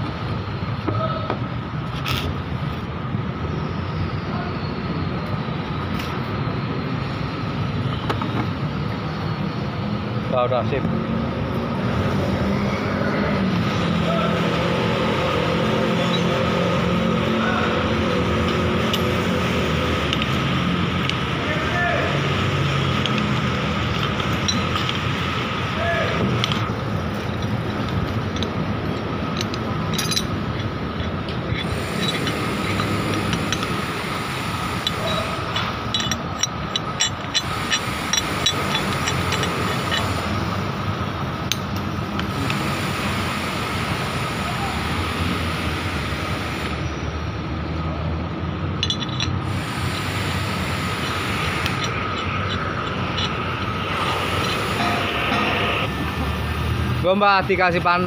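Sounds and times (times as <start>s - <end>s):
constant whine: 0.0s - 58.0s
construction machinery noise: 0.0s - 58.0s
light metallic clinks: 26.4s - 33.7s, 34.8s - 40.2s, 48.8s - 50.2s, 50.8s - 55.8s.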